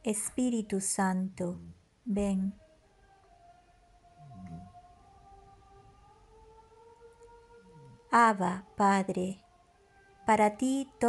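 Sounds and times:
soft pad music: 0.0 - 11.0.

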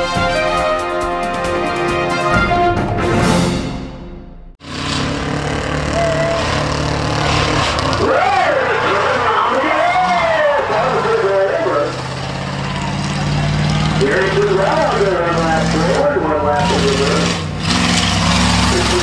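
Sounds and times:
race engines running: 4.6 - 19.0.

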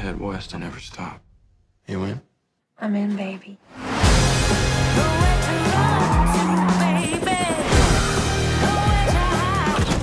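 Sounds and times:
music: 3.8 - 10.0.

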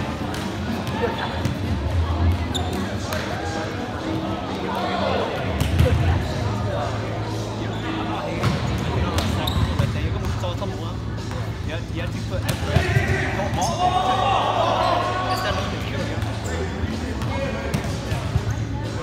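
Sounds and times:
players shouting: 12.6 - 15.7.

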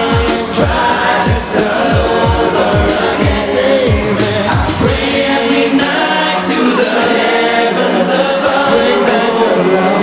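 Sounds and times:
deep drum beat: 0.0 - 5.4
backing music: 0.0 - 10.0
men singing in harmony: 0.0 - 10.0.

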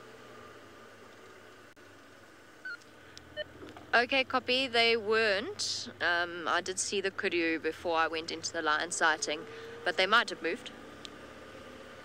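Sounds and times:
vehicle engine at low revs: 0.0 - 12.0.

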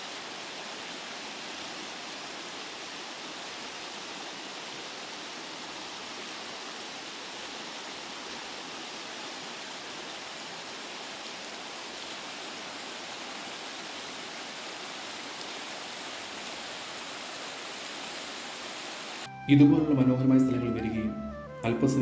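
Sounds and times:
river rushing over stones: 0.0 - 19.3.

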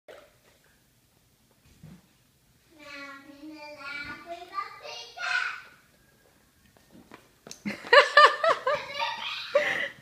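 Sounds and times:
person laughing high-pitched: 7.7 - 10.0.

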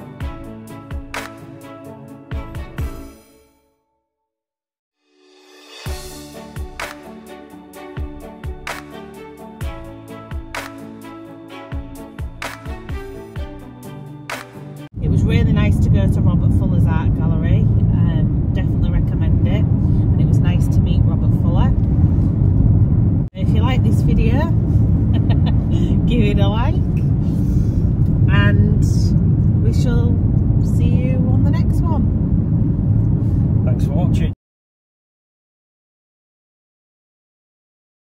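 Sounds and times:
car cabin road and engine rumble: 15.0 - 34.4.

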